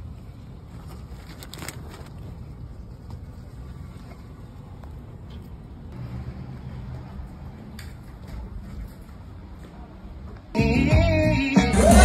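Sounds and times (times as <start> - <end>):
car engine and road noise: 0.0 - 10.6.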